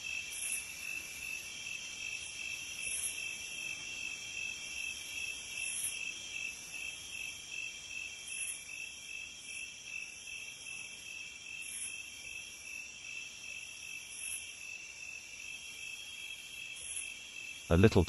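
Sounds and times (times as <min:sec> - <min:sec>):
crickets trilling: 0:00.0 - 0:17.7.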